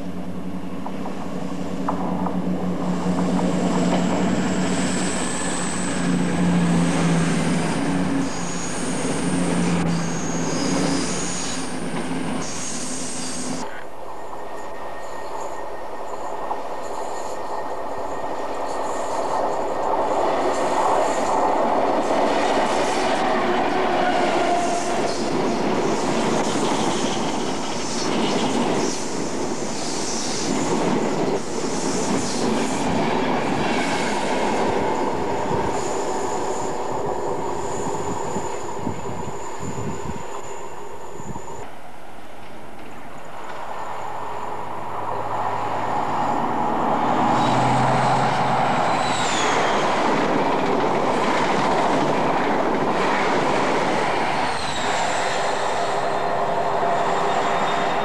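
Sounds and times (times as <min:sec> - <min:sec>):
train running noise with tones: 0:00.0 - 0:58.0
train wheels rushing on rails: 0:00.0 - 0:58.0.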